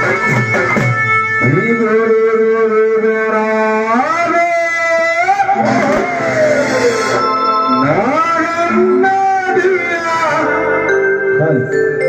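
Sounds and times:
musical accompaniment: 0.0 - 12.0.

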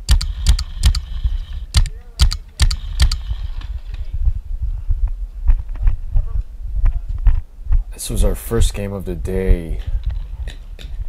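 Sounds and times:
low microphone rumble: 0.4 - 11.0.

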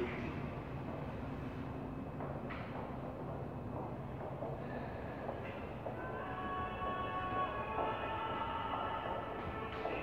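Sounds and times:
subway train rumble: 0.0 - 10.0.

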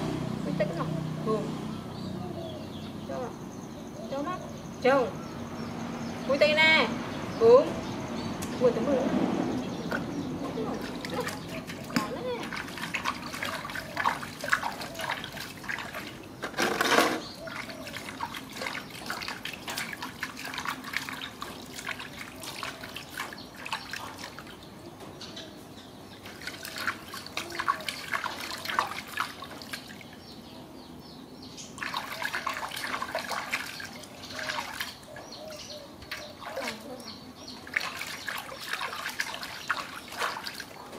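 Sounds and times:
water splashing in a metal basin: 9.8 - 24.8, 26.1 - 30.4, 31.6 - 40.9.

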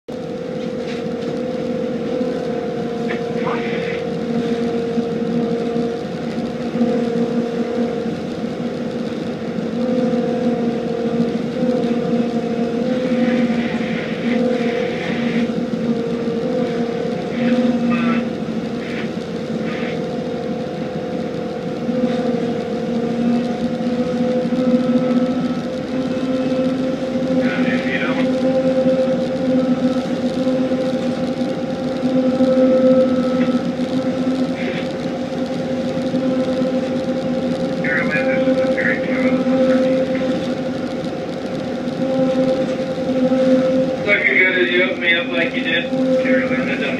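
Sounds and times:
tugboat diesel engine hum: 0.1 - 46.9
water rushing along hull: 0.1 - 46.9.

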